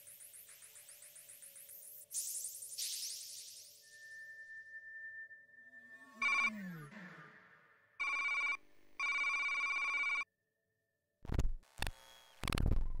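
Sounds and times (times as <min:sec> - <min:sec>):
electronic computer beeps: 0:00.0 - 0:06.7.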